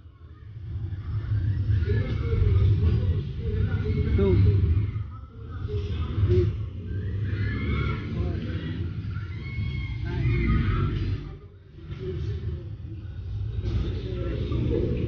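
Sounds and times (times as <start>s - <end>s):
indistinct voices talking: 0.0s - 15.0s.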